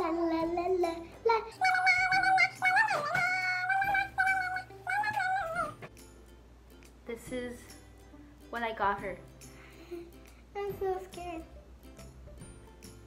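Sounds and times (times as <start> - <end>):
girl singing la la la: 0.0 - 5.8.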